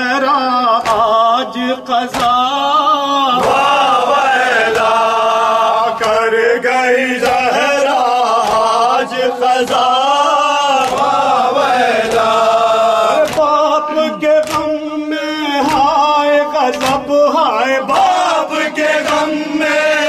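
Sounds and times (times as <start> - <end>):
men chanting a lament in unison: 0.0 - 20.0
hands beating chests: 0.8 - 5.2, 7.2 - 12.5, 13.1 - 15.0, 15.6 - 17.2, 17.8 - 20.0.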